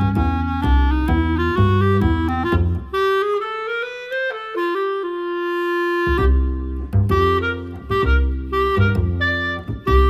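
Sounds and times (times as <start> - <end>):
jazz clarinet playing: 0.0 - 10.0.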